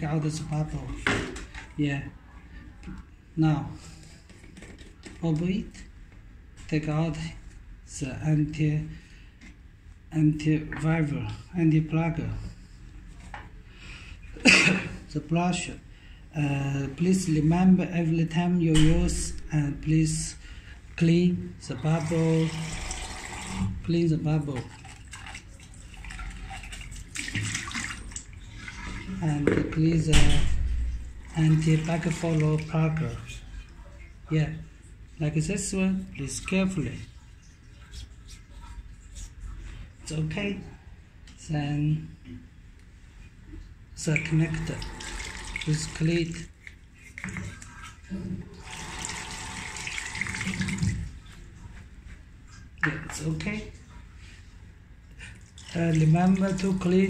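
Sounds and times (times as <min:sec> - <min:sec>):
water splashing in a sink: 0:21.7 - 0:23.9, 0:24.5 - 0:29.5, 0:30.1 - 0:34.3, 0:44.0 - 0:54.3, 0:55.2 - 0:57.0
bristle brush scrubbing: 0:37.2 - 0:39.9
tap water splashing into sink: 0:49.0 - 0:51.2.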